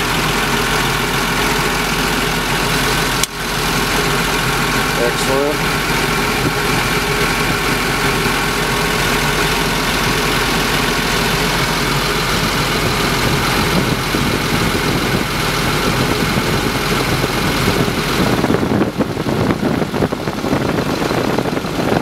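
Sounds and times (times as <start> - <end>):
diesel engine idling: 0.0 - 22.0.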